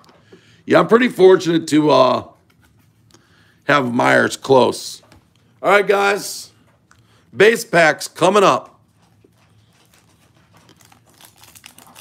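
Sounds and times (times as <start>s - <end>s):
foil pack crinkling: 9.5s - 12.0s.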